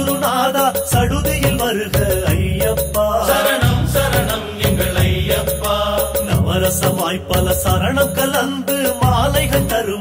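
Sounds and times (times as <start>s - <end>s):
voices chanting: 2.6s - 7.5s.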